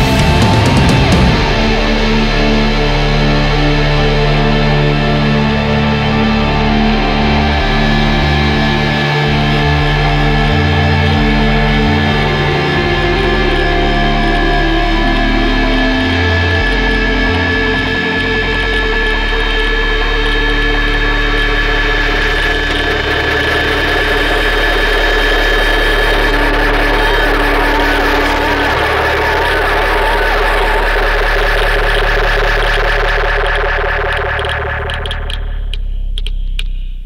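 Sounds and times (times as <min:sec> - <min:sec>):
deep bass hum: 0:00.0 - 0:37.0
droning metal guitar chord: 0:00.0 - 0:37.0.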